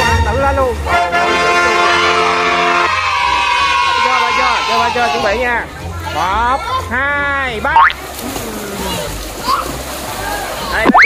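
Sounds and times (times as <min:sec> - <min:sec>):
faint children's voices: 0:04.8 - 0:07.1, 0:08.0 - 0:10.9
children splashing in a pool: 0:07.6 - 0:11.0.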